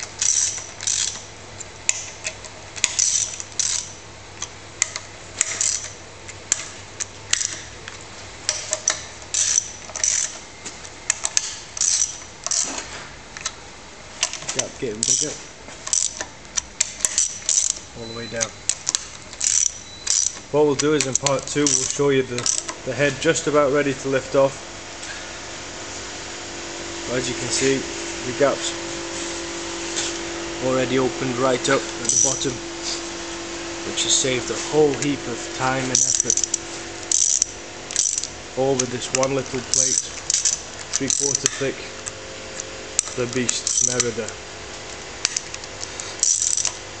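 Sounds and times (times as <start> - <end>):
ratchet wrench clicks: 0.0 - 1.3, 1.9 - 6.7, 7.3 - 7.7, 8.5 - 10.4, 11.1 - 12.7, 15.0 - 15.3, 15.9 - 22.7, 32.0 - 32.5, 35.9 - 41.7, 43.0 - 44.4, 45.2 - 46.8
mechanical hum: 0.0 - 47.0
metal clinks: 17.0 - 22.7, 32.0 - 32.6, 35.9 - 41.7, 43.0 - 44.3, 46.2 - 46.8.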